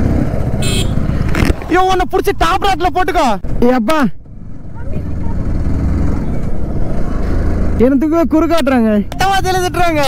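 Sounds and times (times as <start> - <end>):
motorcycle engine rumble: 0.0 - 10.0.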